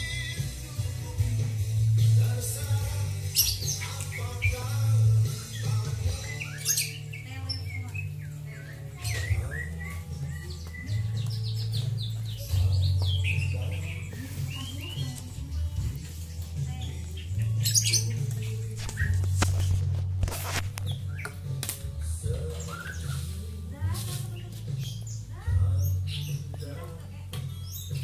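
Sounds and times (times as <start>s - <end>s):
background music with bass line: 0.0s - 28.0s
songbirds chirping: 0.0s - 28.0s.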